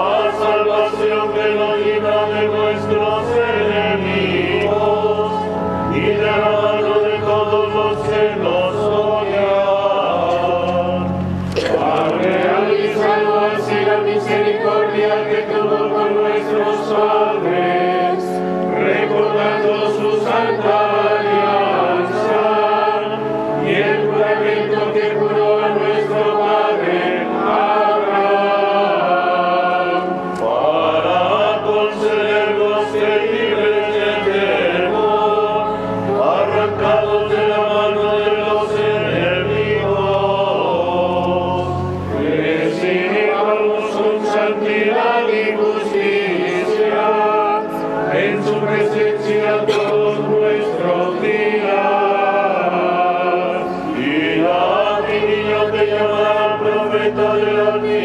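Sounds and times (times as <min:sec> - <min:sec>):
choir singing a chant: 0:00.0 - 0:58.0.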